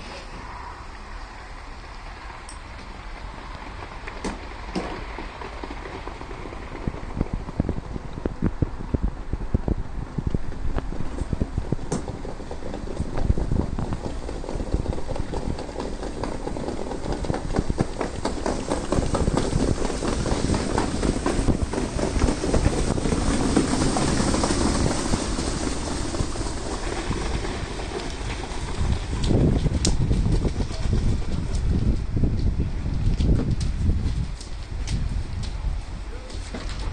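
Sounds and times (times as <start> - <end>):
wind rumble on microphone: 0.0 - 36.9.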